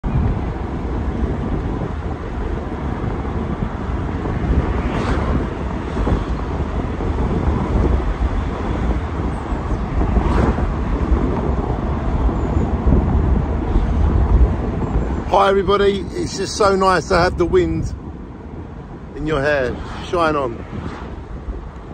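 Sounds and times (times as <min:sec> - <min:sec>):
road noise: 0:00.0 - 0:21.9
wind buffeting microphone: 0:00.0 - 0:21.9.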